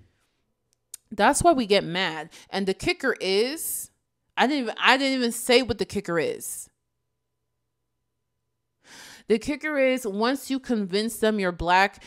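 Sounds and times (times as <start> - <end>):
woman breathing in: 8.8 - 9.3.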